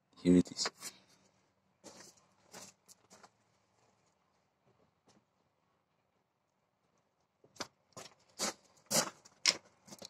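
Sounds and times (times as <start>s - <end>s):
scraping rustling noises: 0.6s - 4.2s, 8.0s - 10.0s.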